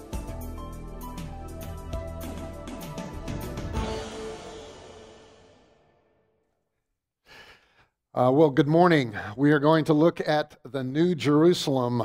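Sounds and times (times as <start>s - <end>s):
man's short intake of breath: 7.2s - 7.9s.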